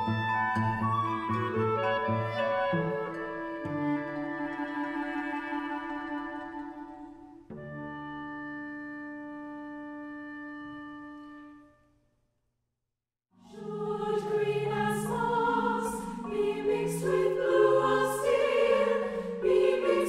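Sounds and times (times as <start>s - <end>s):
instruments holding chords: 13.4s - 20.0s
women's choir singing: 13.4s - 20.0s.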